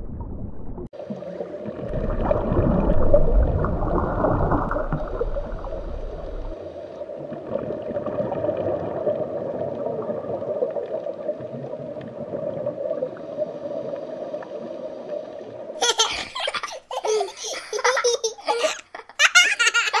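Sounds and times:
underwater water rush: 0.0s - 18.7s
child giggling: 15.8s - 20.0s.

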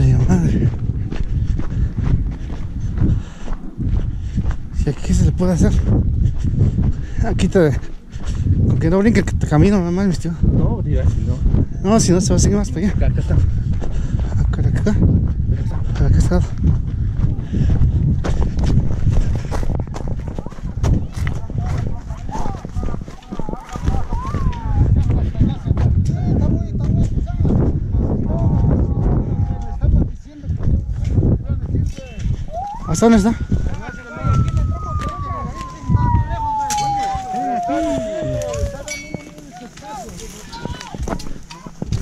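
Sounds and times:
people talking: 0.0s - 0.7s, 8.8s - 13.4s, 20.2s - 42.0s
footsteps crunching on stony ground: 0.0s - 26.1s, 30.2s - 36.3s, 36.9s - 42.0s
low thumps: 32.4s - 39.4s
steady tone sliding down: 32.5s - 39.2s
rustling through brush: 38.4s - 42.0s.

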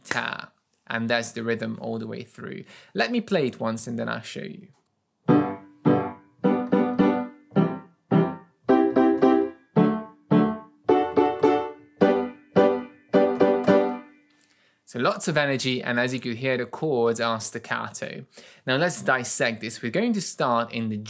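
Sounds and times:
piano staccato chords: 5.3s - 14.2s.

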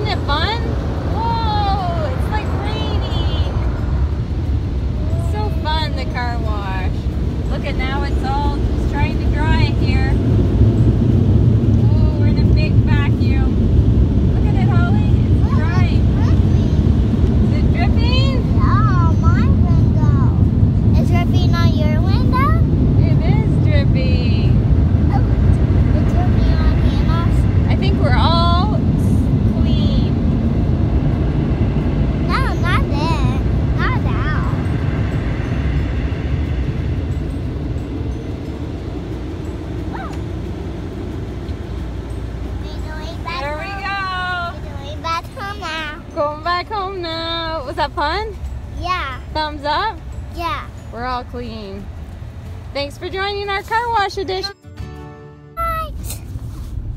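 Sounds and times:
car wash air dryers roaring: 0.0s - 54.4s.

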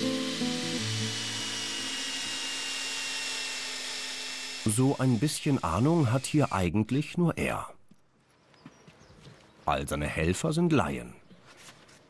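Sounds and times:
guitar music: 0.0s - 1.8s
power tool whining: 0.0s - 6.8s.

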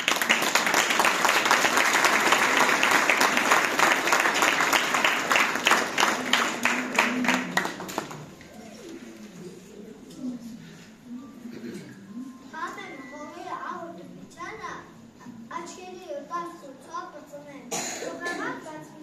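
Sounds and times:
audience applauding: 0.0s - 8.9s.

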